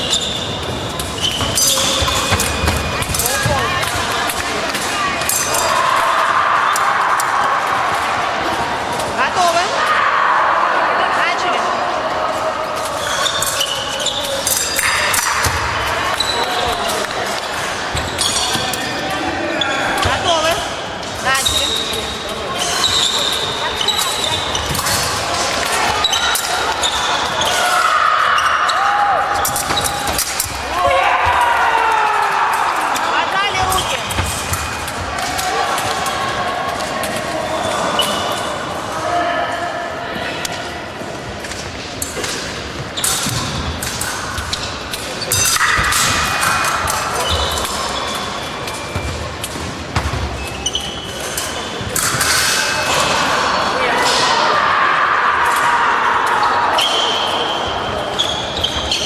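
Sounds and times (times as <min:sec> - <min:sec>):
echoing voices and shouts: 0:00.0 - 0:41.4, 0:50.3 - 0:59.0.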